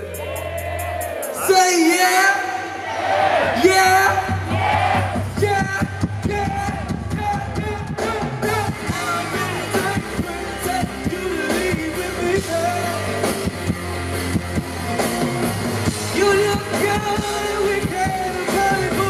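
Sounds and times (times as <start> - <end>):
steady beat: 0.0 - 2.2, 3.6 - 19.0
live band music: 3.6 - 19.0
electric bass: 3.7 - 19.0
man singing: 5.4 - 13.5, 16.0 - 19.0.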